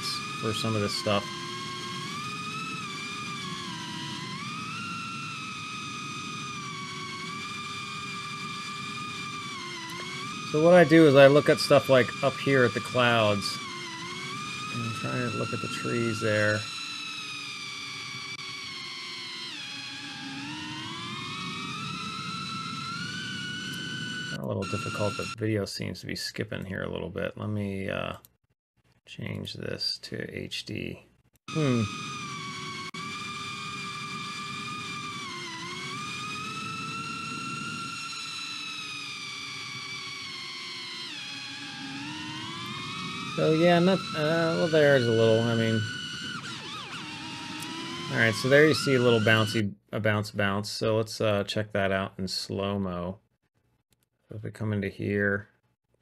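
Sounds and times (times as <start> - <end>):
drone motors whining: 0.0 - 25.4, 31.4 - 49.7.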